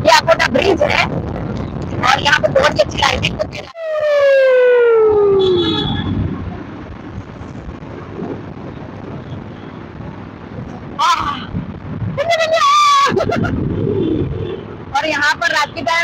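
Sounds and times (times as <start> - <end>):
wind rushing: 0.0 - 15.4
traffic: 0.0 - 16.0.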